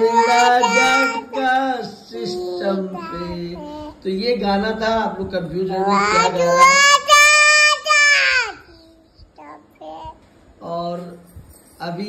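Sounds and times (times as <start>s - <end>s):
small child singing: 0.0s - 4.0s, 5.8s - 10.2s.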